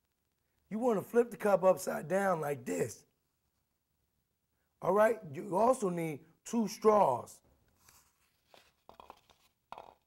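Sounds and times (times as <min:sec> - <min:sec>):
plastic straws rustling and clicking: 0:07.7 - 0:10.0.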